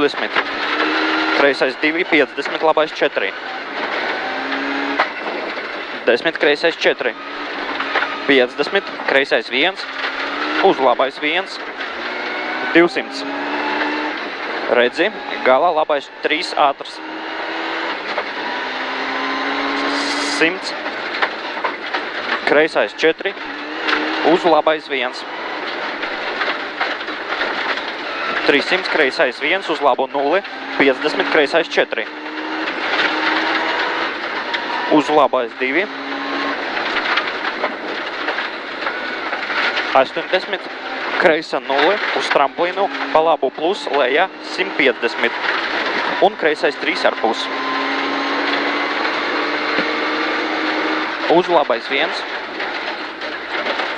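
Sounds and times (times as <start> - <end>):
rally car engine pulling hard: 0.0 - 53.9
tyres on gravel: 0.0 - 53.9.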